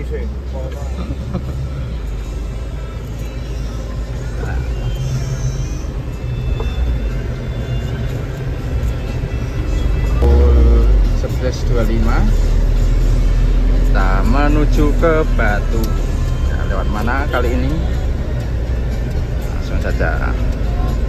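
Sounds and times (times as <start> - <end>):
background music: 0.0 - 21.0
diesel engine and road rumble: 0.0 - 21.0.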